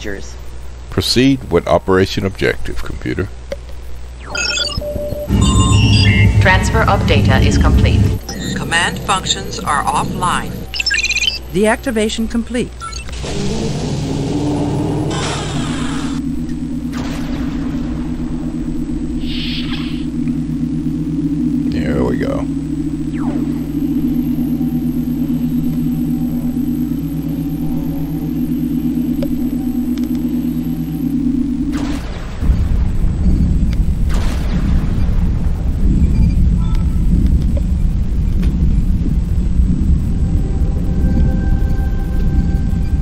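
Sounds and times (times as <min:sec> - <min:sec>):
low pulsing machine drone: 0:00.0 - 0:43.0
thunder-like crackle: 0:16.4 - 0:21.8, 0:31.2 - 0:43.0.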